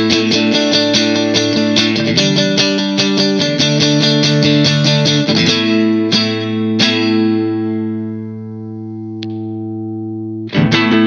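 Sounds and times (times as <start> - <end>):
clean electric guitar chord: 0.0 - 11.0
picked electric guitar notes: 0.0 - 11.0.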